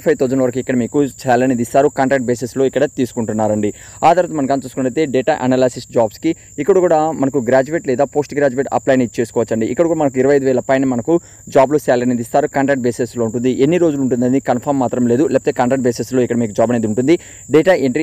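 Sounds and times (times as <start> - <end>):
faint high-pitched whine: 0.0 - 18.0
man talking: 0.0 - 18.0.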